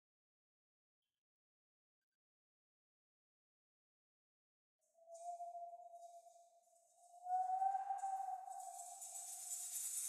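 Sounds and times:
hand shaker rattling: 8.5s - 10.0s.

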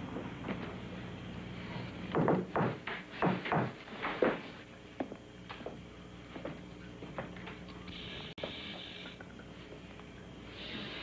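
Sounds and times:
low steady hum: 0.0s - 11.0s
knocks and thumps: 2.1s - 4.5s.

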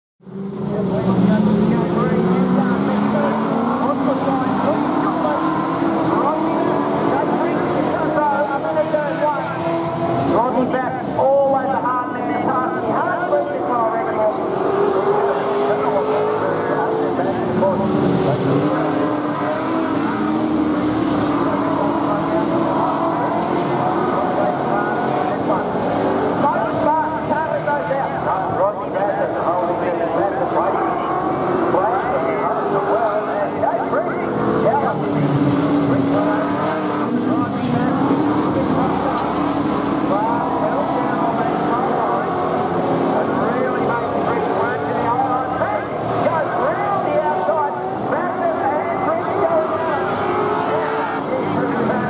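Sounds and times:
race car engines running hard: 0.2s - 52.0s.

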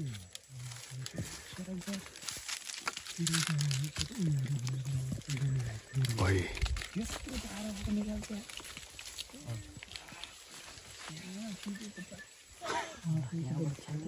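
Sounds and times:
bark and leaves crackling: 0.0s - 14.0s.

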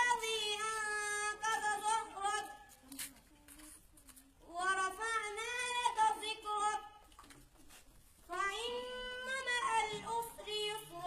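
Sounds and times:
person singing unaccompanied: 0.0s - 2.7s, 4.4s - 7.0s, 8.3s - 11.0s.

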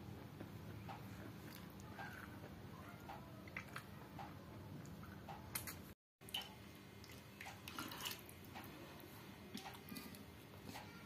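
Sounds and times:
wet eating sounds: 0.9s - 10.9s.

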